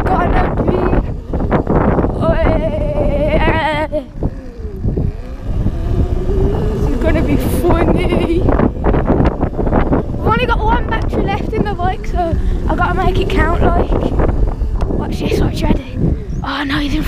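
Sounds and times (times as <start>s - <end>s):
electric motor whine: 0.0s - 17.0s
rumble from bumpy ground: 0.0s - 17.0s
wind on microphone: 0.0s - 17.0s.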